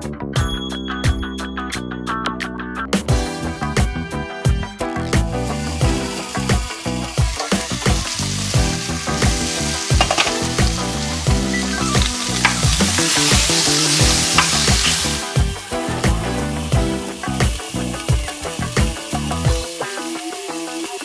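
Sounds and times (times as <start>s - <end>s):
sausages sizzling in a skillet: 3.4s - 21.0s
wooden spoon knocks: 10.0s - 10.4s.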